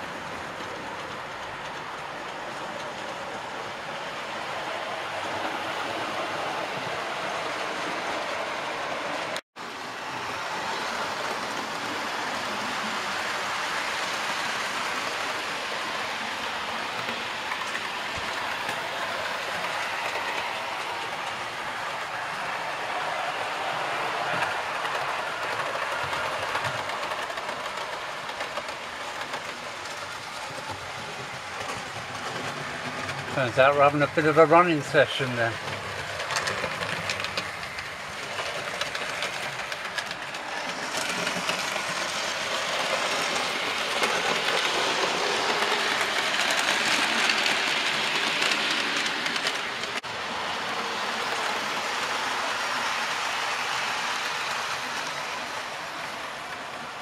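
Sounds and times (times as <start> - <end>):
model train running: 0.0 - 57.0.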